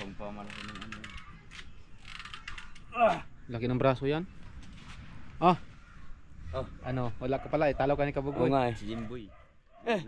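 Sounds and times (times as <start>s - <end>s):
hand gripper creaking and clicking: 0.0s - 3.2s.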